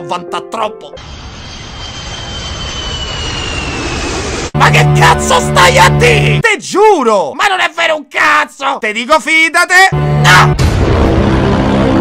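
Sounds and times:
dramatic whoosh sound effect: 1.0s - 4.6s
high whine gliding down: 1.0s - 5.0s.

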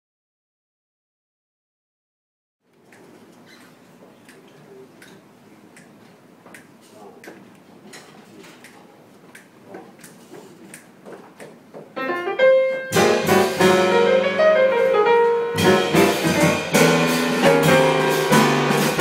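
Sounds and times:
room murmur: 2.6s - 19.0s
jazz quartet playing: 12.0s - 19.0s.

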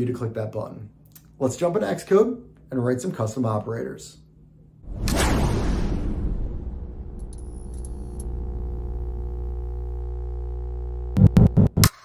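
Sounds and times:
synthesizer drone with low bass: 6.5s - 11.8s.

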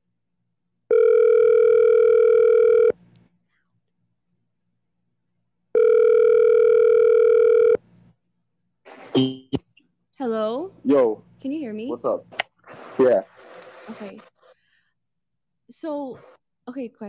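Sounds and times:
phone ringback tone: 0.9s - 3.0s, 5.8s - 7.8s.

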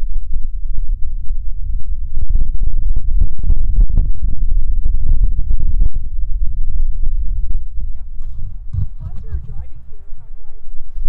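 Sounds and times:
wind buffeting microphone: 1.8s - 11.0s
sharp knocks: 8.2s - 10.2s.

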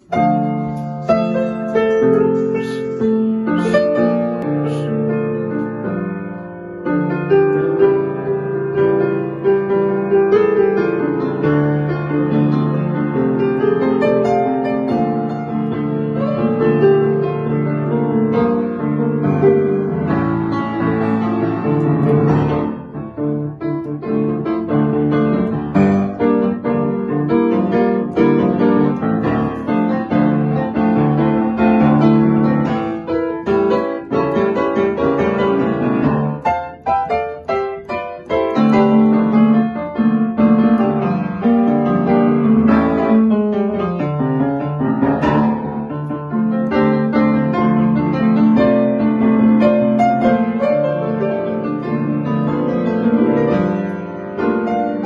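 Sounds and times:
upright piano playing: 0.0s - 55.0s.

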